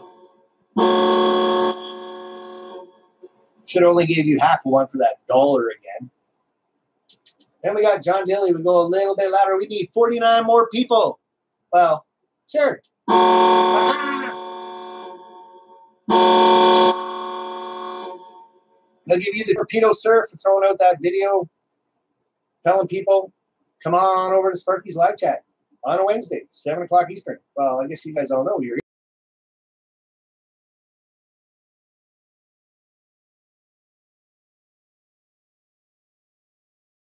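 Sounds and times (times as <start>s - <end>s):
horn blast: 0.0s - 3.0s, 13.1s - 18.5s.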